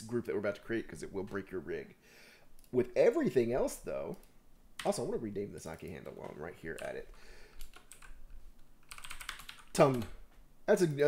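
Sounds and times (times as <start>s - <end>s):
computer keyboard typing: 5.8s - 10.2s.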